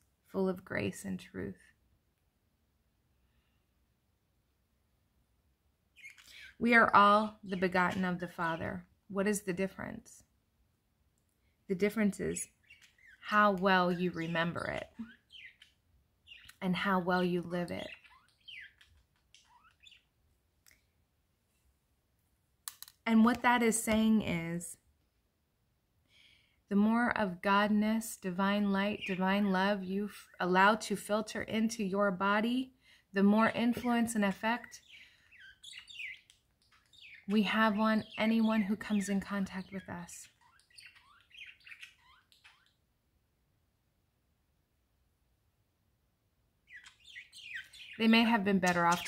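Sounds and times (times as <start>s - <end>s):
faint bird chirps: 5.9s - 8.8s, 11.9s - 21.0s, 33.4s - 43.0s, 46.6s - 49.0s.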